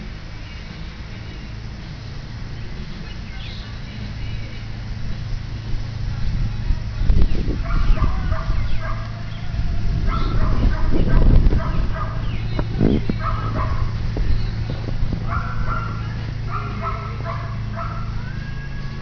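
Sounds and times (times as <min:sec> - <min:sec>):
steady low rush: 0:00.0 - 0:19.0.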